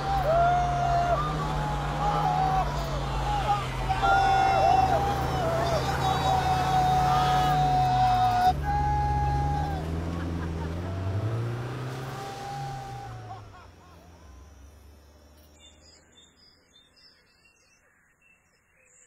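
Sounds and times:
long whooping voices: 0:00.0 - 0:14.7
car engine revving: 0:00.0 - 0:15.8
faint bird chirps: 0:13.9 - 0:19.0.

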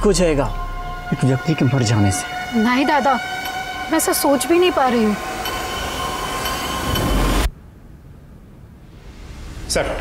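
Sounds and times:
held musical drone: 0:00.0 - 0:07.5.

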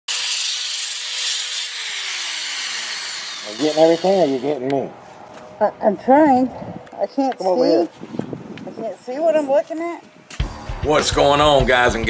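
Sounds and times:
drill sanding wood: 0:00.1 - 0:04.6.

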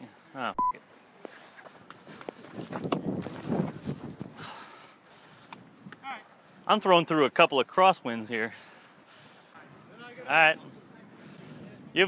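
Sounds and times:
breath into microphone: 0:04.2 - 0:05.9, 0:08.5 - 0:09.6, 0:11.1 - 0:11.8.

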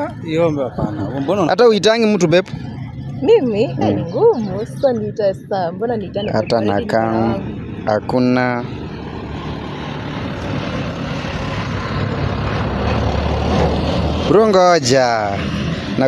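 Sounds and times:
lorry engine rumble: 0:00.0 - 0:16.0.

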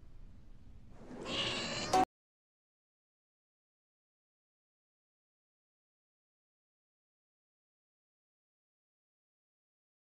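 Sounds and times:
cat meowing: 0:01.2 - 0:02.1.

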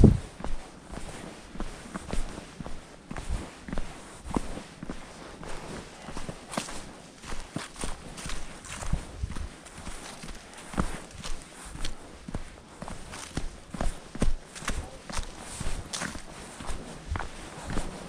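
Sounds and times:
footsteps crunching leaves on dirt: 0:03.7 - 0:18.0.

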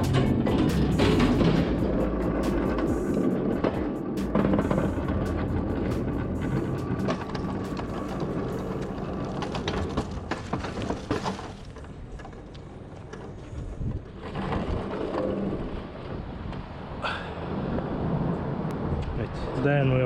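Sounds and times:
music playing: 0:00.0 - 0:09.3
pallet truck wheels rattling: 0:00.0 - 0:16.9.

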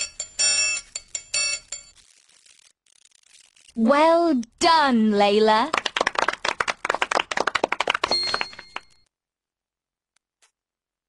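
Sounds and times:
high steady ringing tone: 0:00.0 - 0:01.9
hands clapping rapidly: 0:05.5 - 0:09.0.

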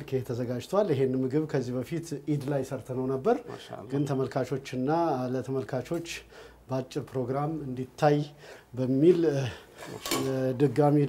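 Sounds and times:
metal utensil clinking on plate: 0:09.8 - 0:10.4.

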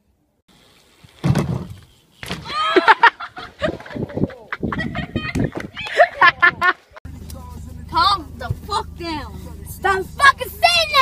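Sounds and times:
person cackling laughter: 0:02.6 - 0:06.8.

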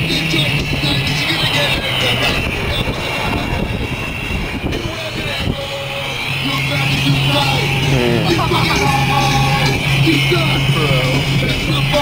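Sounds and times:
indistinct voices: 0:00.0 - 0:12.0
low engine hum: 0:00.0 - 0:12.0
traffic noise: 0:00.0 - 0:12.0
wind noise: 0:00.0 - 0:12.0.

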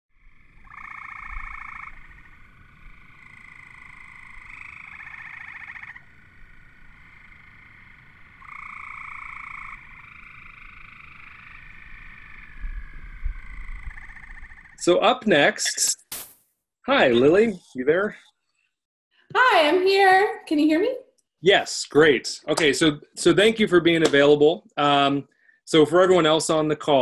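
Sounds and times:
frogs calling in pulsed trills: 0:00.2 - 0:14.9.

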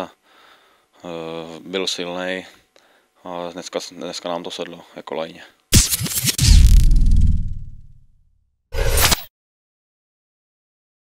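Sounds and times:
short burst: 0:05.8 - 0:08.0
deep boom: 0:05.8 - 0:08.1.

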